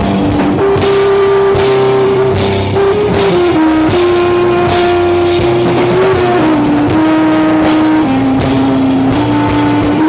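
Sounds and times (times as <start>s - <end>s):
drums and cymbals: 0.0s - 10.0s
long held guitar note: 0.0s - 10.0s
rock band playing live: 0.0s - 10.0s.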